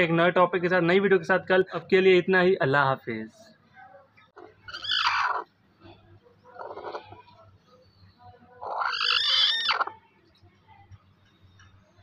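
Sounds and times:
hen calling: 4.6s - 5.5s, 8.6s - 10.0s.

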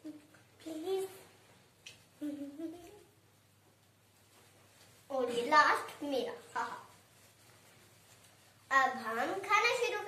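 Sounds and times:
child humming: 2.2s - 3.1s.

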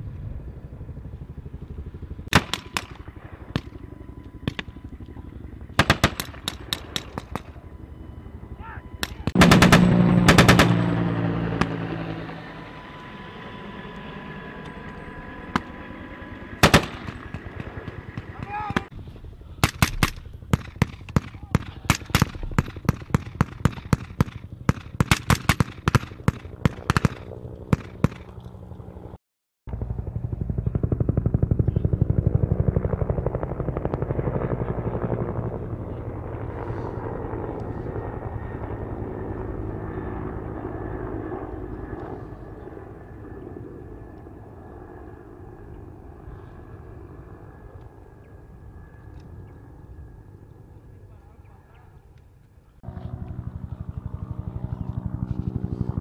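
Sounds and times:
rifle shots: 2.3s - 3.7s, 5.8s - 7.5s, 9.0s - 11.0s, 16.6s - 18.8s.

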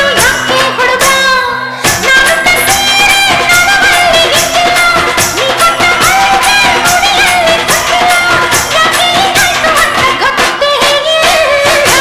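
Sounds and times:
steady drum beat: 1.9s - 12.0s.

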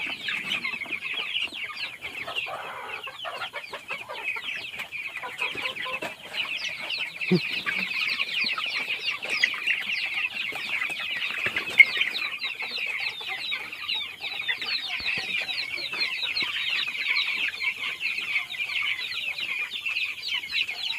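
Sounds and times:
chicks peeping: 0.0s - 20.9s.

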